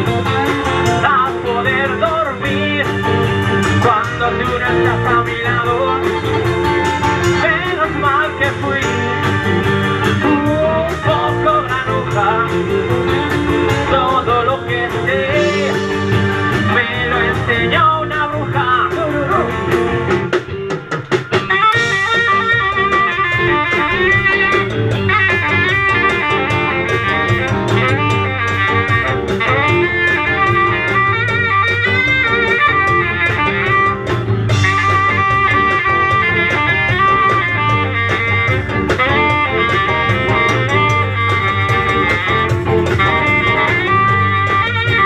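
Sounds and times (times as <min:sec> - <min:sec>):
drum fill: 0:00.0 - 0:45.0
live band playing: 0:00.0 - 0:45.0
saxophone lead: 0:00.0 - 0:45.0.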